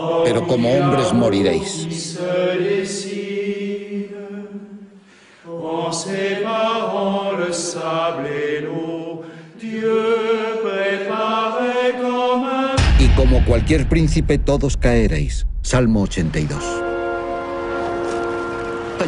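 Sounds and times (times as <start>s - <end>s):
choir chanting: 0.0s - 4.9s, 5.5s - 13.1s.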